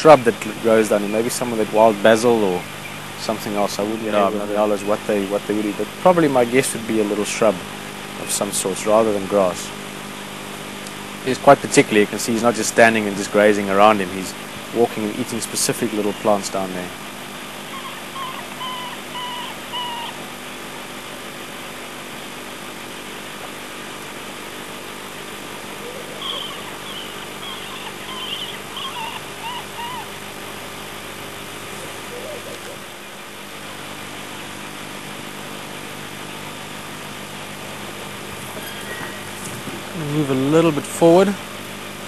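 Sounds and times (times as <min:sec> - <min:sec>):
birds chirping: 0:00.0 - 0:06.9, 0:11.3 - 0:21.3, 0:25.1 - 0:33.4, 0:37.6 - 0:41.4
steady low hum: 0:00.0 - 0:42.0.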